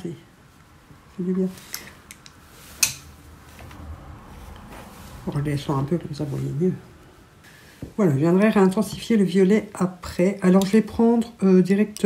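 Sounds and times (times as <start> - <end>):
sharp click of makeup brushes: 1.7 - 3.1.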